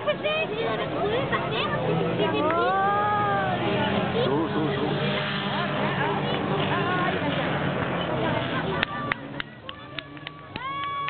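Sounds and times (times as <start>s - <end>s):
racing car engines: 0.0s - 11.0s.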